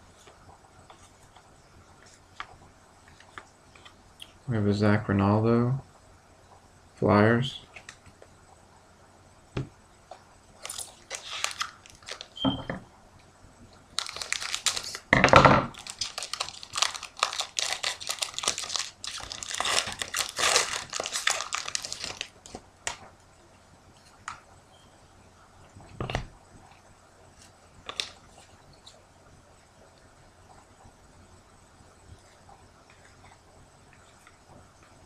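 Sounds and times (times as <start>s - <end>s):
cards rustling and clicking: 10.6s - 12.4s, 15.8s - 23.0s, 27.4s - 29.0s
foil wrapper crinkling: 10.6s - 12.4s, 13.9s - 15.1s, 15.7s - 23.0s, 27.8s - 28.5s.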